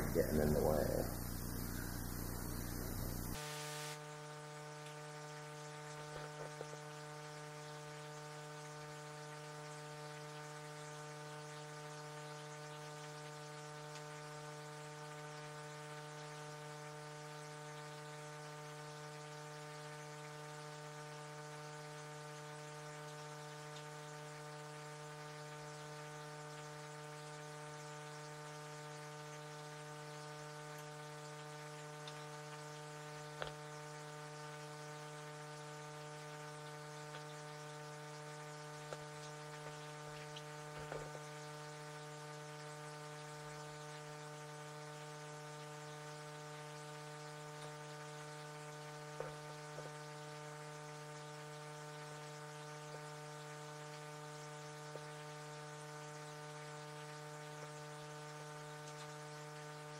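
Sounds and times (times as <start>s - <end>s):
loud hiss: 0.0s - 4.0s
faint hiss: 0.0s - 4.2s
steady electrical hum: 0.0s - 59.9s
faint ticks: 23.0s - 24.0s, 30.7s - 34.6s.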